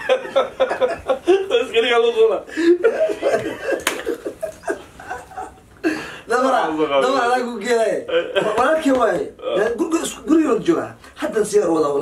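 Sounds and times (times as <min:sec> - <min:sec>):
men laughing: 0:00.0 - 0:06.2
men talking: 0:00.0 - 0:12.0.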